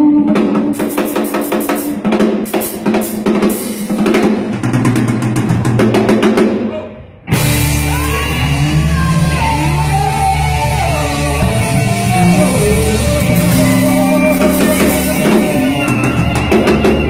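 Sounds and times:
live band music: 0:00.2 - 0:17.0
snare rolls and cymbals: 0:00.4 - 0:06.6
held bass notes: 0:07.2 - 0:17.0.

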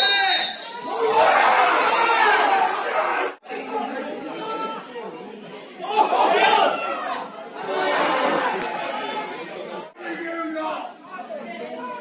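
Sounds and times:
crowd shouting and chatter: 0:00.0 - 0:12.0.

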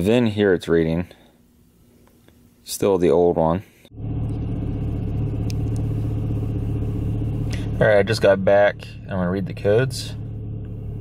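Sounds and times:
car engine running: 0:03.9 - 0:11.0.

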